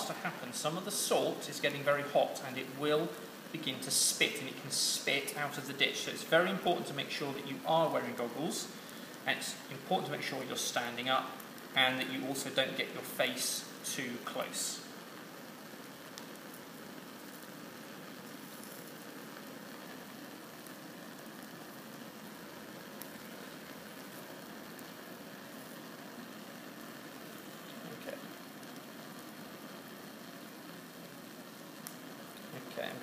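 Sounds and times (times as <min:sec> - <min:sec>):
burner flame hissing: 0:00.0 - 0:33.0
salt water sizzling: 0:00.0 - 0:33.0.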